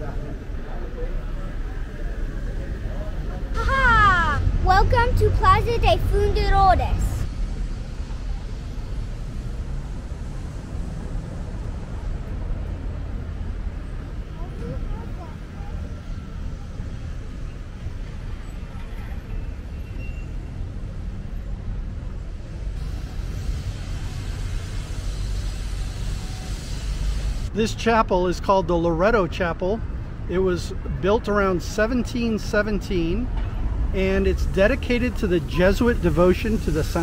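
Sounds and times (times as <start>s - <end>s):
faint voices of passers-by: 0.0s - 26.8s
street traffic rumble: 0.0s - 37.0s.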